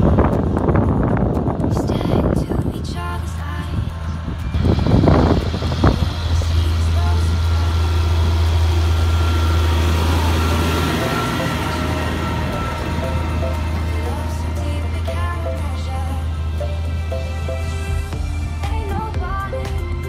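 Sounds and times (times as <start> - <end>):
tractor diesel engine droning: 0.0 - 20.0.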